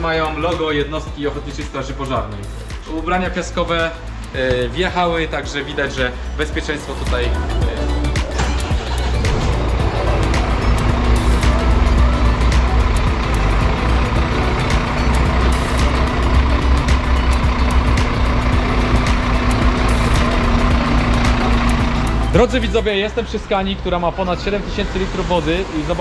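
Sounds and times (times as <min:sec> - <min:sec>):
diesel engine running: 0:00.0 - 0:26.0
music playing: 0:00.0 - 0:26.0
steady hum: 0:07.4 - 0:22.7.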